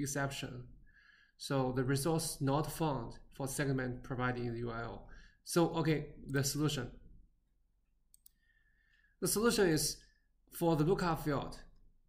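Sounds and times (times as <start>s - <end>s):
computer mouse clicks: 8.1s - 8.4s.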